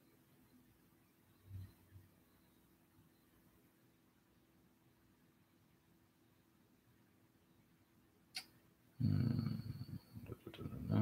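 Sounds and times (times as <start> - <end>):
man humming: 9.0 - 11.0.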